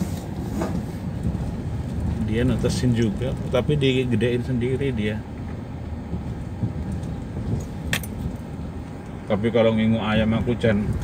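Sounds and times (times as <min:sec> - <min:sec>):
engine and tyre rumble: 0:00.0 - 0:11.0.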